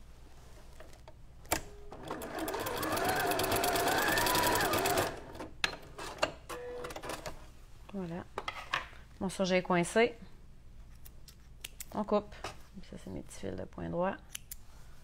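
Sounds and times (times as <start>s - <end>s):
sewing machine running: 1.9s - 6.1s.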